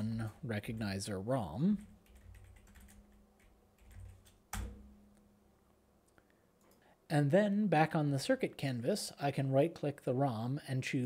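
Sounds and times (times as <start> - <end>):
keyboard keystrokes: 2.0 - 4.9.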